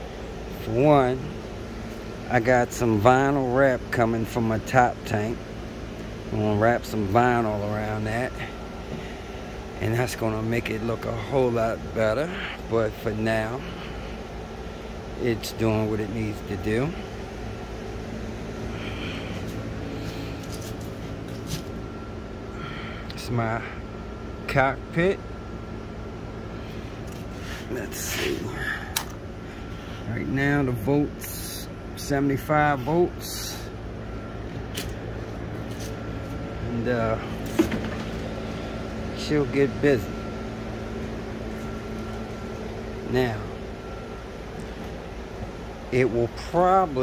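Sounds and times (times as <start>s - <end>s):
faint high whine: 0.0s - 47.0s
low mechanical hum: 0.0s - 47.0s.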